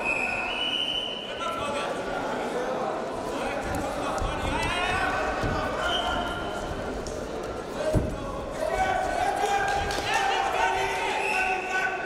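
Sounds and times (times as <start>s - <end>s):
people shouting in echoing hall: 7.8s - 12.0s.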